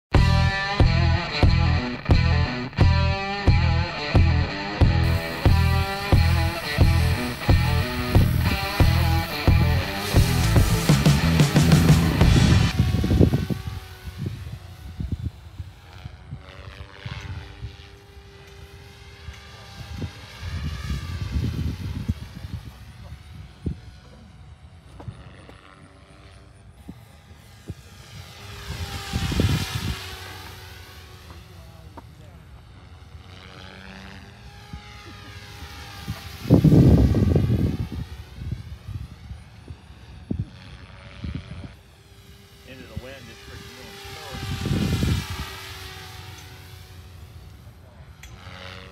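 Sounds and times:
rc helicopter rotor whine: 0.1s - 48.9s
low rumbling gusts: 0.2s - 16.4s, 36.4s - 39.0s, 42.7s - 45.5s.

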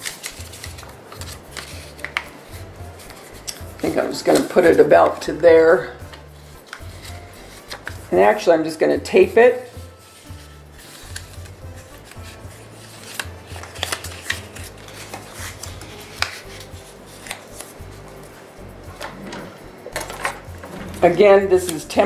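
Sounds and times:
paper and tape rubbing on plastic: 0.0s - 5.2s, 6.1s - 8.1s, 9.5s - 18.3s
faint background music: 0.0s - 22.0s.

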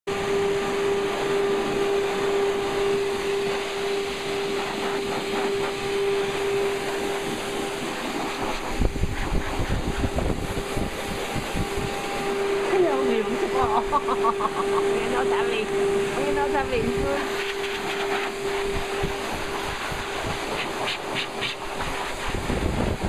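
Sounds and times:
blow dryer whining: 0.1s - 23.0s
air blast buffeting microphone: 3.0s - 23.0s.

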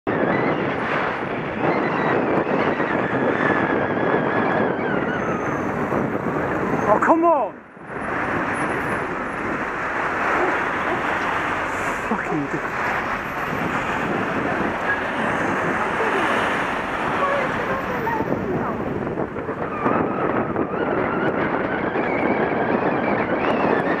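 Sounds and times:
road and traffic noise: 0.1s - 24.0s
wind rushing over microphone: 0.1s - 24.0s.

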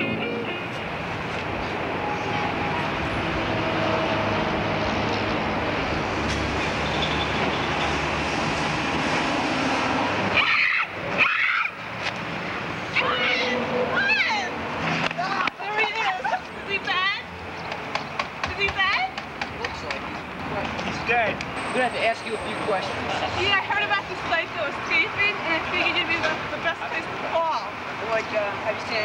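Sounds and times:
street ambience hiss: 0.0s - 29.0s.

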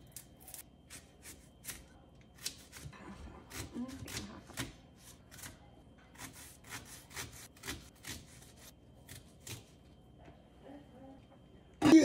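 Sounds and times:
knife chopping onion: 0.0s - 9.8s.

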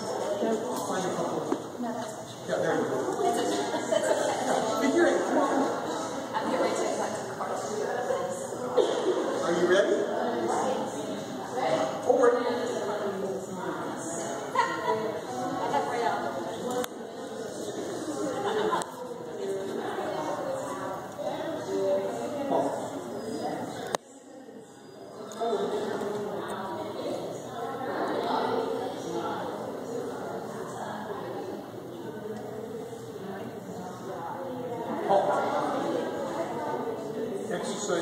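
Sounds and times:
people talking in a hall: 0.0s - 38.0s
room noise: 0.0s - 38.0s.

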